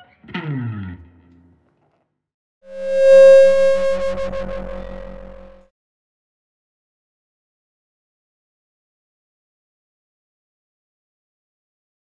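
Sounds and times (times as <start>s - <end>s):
sustained synthesizer note: 2.7s - 5.6s.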